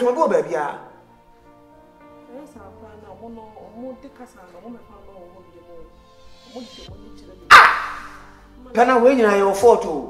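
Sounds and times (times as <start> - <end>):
quiet background music: 0.0 - 10.0
loud dog bark: 7.5 - 8.3.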